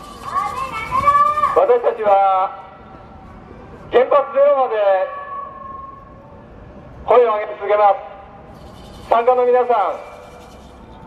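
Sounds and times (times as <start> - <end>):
low street background: 0.0 - 11.0.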